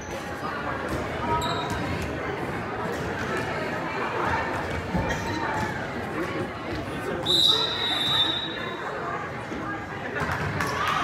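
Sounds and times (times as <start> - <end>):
murmur of spectators talking: 0.0 - 11.0
sneaker squeaks on hardwood: 1.3 - 1.9.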